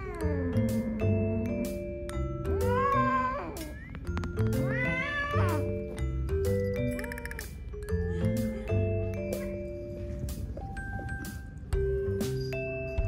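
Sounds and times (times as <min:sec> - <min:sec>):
music with mallet notes: 0:00.0 - 0:13.0
cat yowling: 0:04.7 - 0:05.7.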